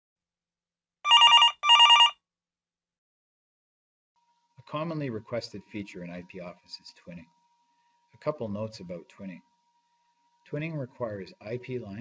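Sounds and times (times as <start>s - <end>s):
electronic telephone ring: 1.1s - 2.2s.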